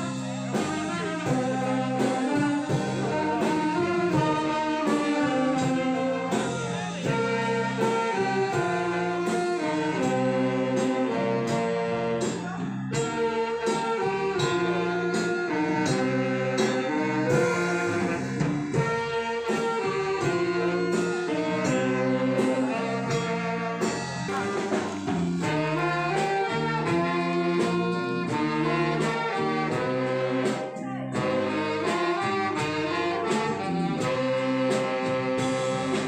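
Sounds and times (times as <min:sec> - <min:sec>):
brass band music: 0:00.0 - 0:36.0.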